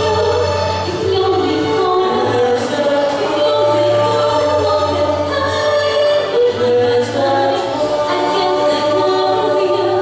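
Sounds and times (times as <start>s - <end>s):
woman and man singing duet: 0.0s - 10.0s.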